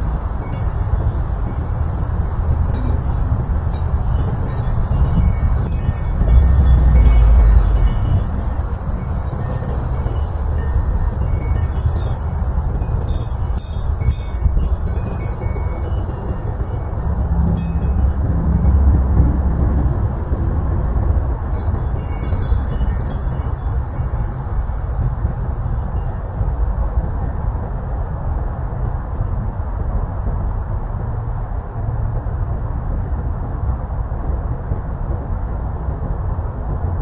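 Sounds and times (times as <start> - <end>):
wind chimes tinkling: 0.0 - 27.6
low rumble of wind: 0.0 - 37.0.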